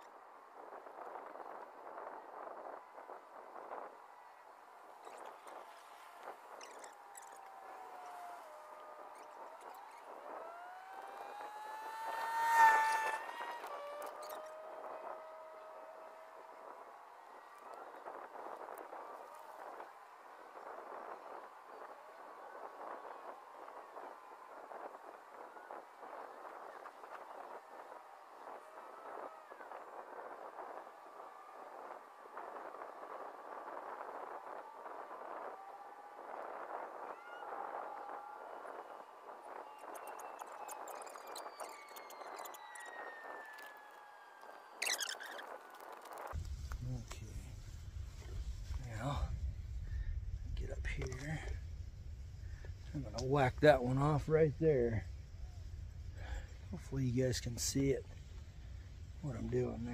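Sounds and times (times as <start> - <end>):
vehicle engine passing by: 10.4 - 16.4.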